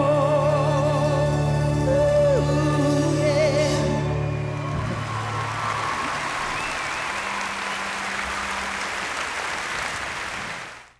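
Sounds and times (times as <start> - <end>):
applause: 4.5 - 10.9.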